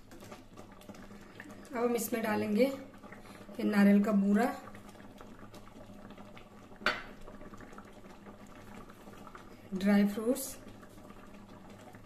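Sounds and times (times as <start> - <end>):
pudding bubbling in a pot: 0.0 - 12.0.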